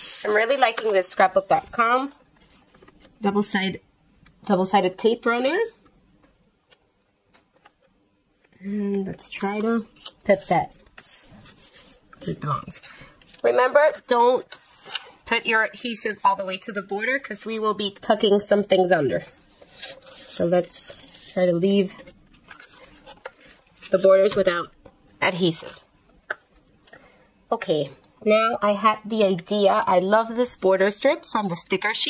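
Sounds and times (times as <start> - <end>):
paper rustling on a tabletop: 9.7 - 15.0, 19.2 - 24.0.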